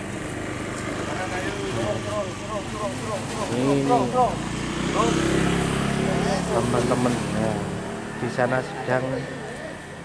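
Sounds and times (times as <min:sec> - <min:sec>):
men calling out: 0:01.6 - 0:06.8.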